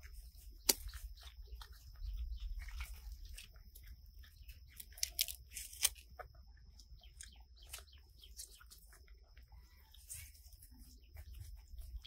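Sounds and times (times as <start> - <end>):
wet clicks and smacks: 0.0 - 9.4
monkeys chewing fruit: 0.0 - 12.0.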